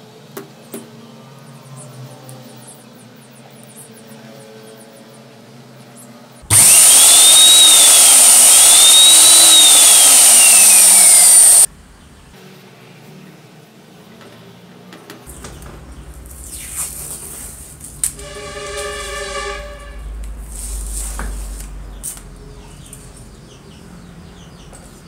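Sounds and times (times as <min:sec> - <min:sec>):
drilling machine motor whining: 0:06.5 - 0:11.7.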